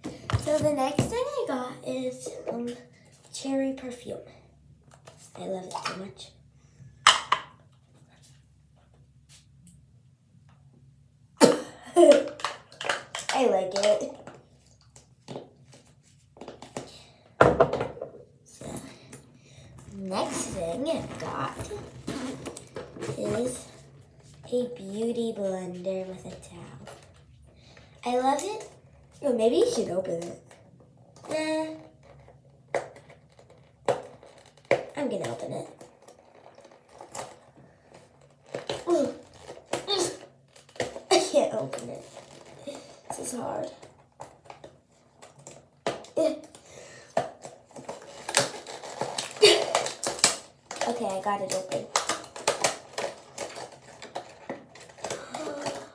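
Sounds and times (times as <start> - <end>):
girl coughing: 11.4 - 12.0
child's effort vocal sounds: 55.1 - 55.9.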